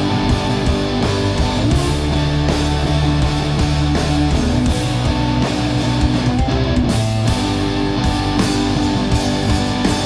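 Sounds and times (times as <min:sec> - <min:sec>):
distorted electric guitar: 0:00.0 - 0:10.0
electric bass: 0:00.0 - 0:10.0.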